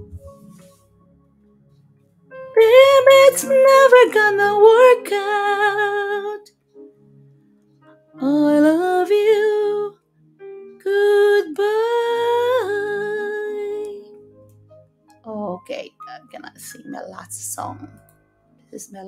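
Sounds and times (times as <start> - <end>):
woman singing wordless notes: 2.5 - 6.5, 8.2 - 10.0, 10.8 - 14.2.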